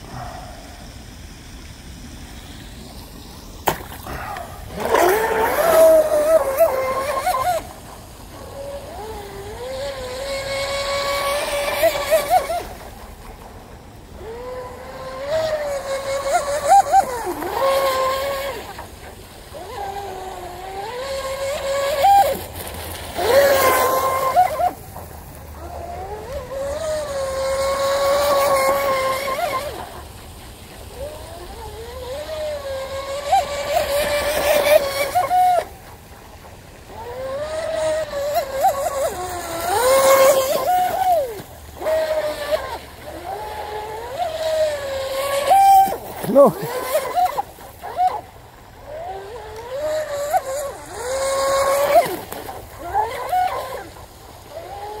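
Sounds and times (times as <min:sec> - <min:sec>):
rc boat electric motor whining: 0:00.0 - 0:55.0.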